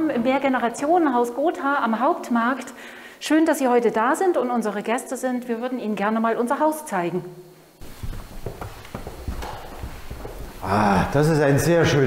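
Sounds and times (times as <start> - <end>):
footsteps on wooden floor: 7.8 - 10.7.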